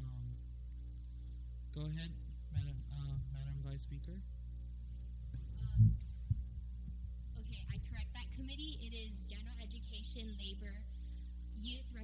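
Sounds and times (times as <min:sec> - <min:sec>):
low electrical hum: 0:00.0 - 0:12.0
microphone handling thump: 0:02.5 - 0:03.4, 0:05.3 - 0:08.0.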